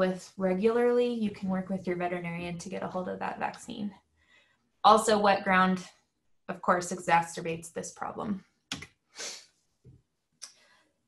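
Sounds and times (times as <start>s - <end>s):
breath drawn in: 9.1s - 9.6s.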